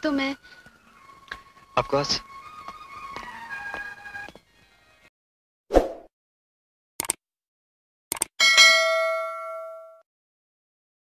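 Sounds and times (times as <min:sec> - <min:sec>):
bell ding: 0:08.4 - 0:10.0.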